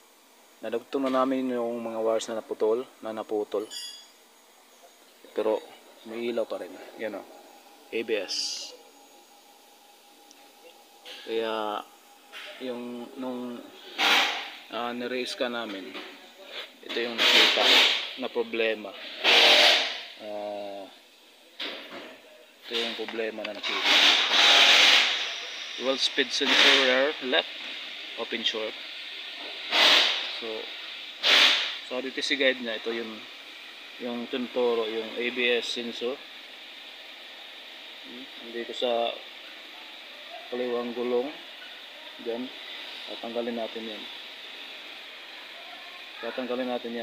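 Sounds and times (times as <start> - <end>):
person speaking: 5.2 - 8.9, 10.3 - 18.9
loud rubbing hiss: 11.0 - 15.6, 16.3 - 20.8, 22.7 - 38.2.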